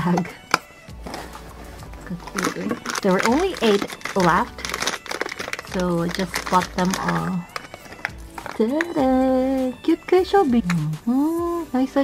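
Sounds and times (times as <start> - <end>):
foil pouch crinkling: 0.4 - 9.0.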